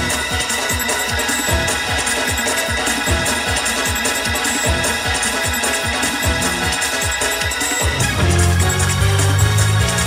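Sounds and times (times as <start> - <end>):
organ playing: 0.0 - 10.0.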